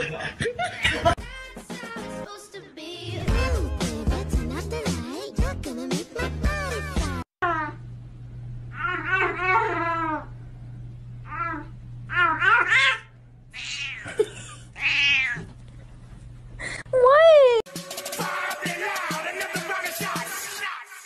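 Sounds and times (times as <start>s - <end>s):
steady low hum: 7.4s - 17.0s
cat meowing: 14.8s - 15.5s.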